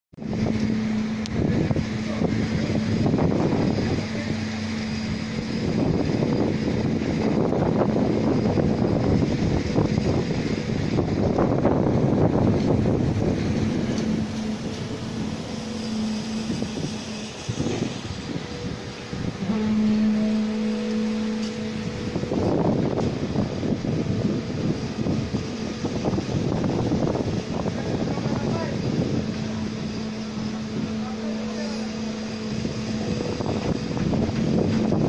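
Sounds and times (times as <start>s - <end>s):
low machine hum: 0.2s - 35.0s
wind buffeting microphone: 0.2s - 35.0s.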